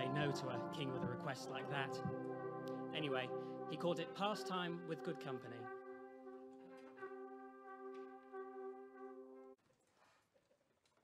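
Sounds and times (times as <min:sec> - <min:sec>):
brass band holding a chord: 0:00.0 - 0:09.6.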